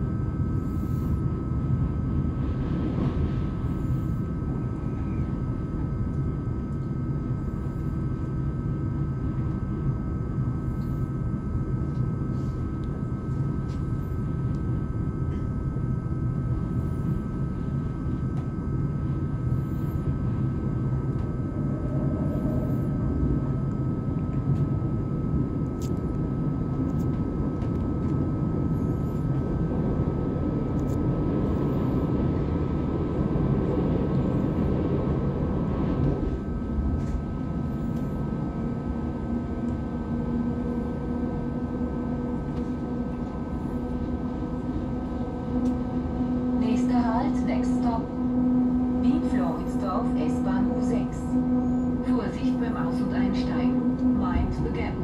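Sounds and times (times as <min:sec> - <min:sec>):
constant high whine: 0:00.0 - 0:55.0
low steady hum: 0:00.0 - 0:55.0
rumble of wheels on track: 0:00.0 - 0:55.0.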